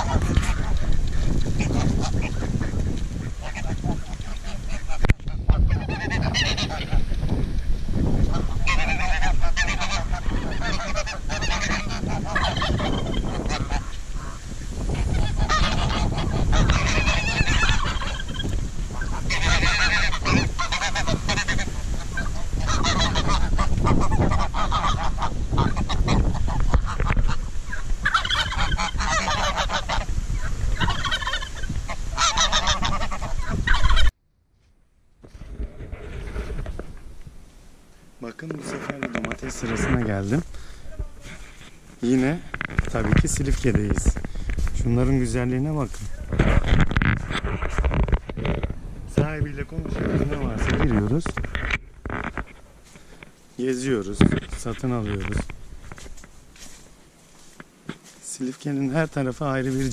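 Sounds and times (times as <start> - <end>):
geese honking: 0.0 - 34.1.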